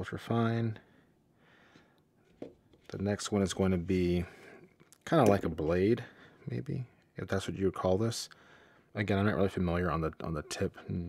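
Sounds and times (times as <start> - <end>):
man speaking: 2.9 - 8.3, 8.9 - 11.0.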